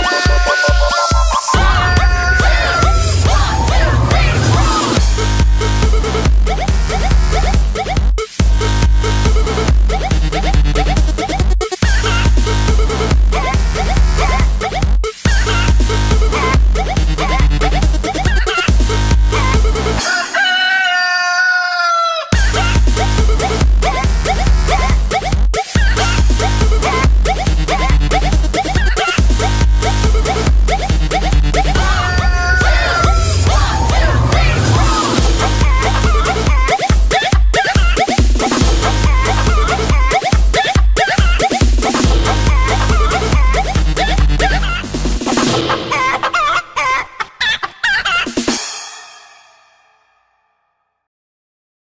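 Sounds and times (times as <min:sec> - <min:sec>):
rooster crowing: 0:00.0 - 0:03.2, 0:20.0 - 0:22.3, 0:31.8 - 0:34.1
dance music: 0:00.0 - 0:20.1, 0:22.3 - 0:46.4
chicken clucking: 0:20.0 - 0:22.3.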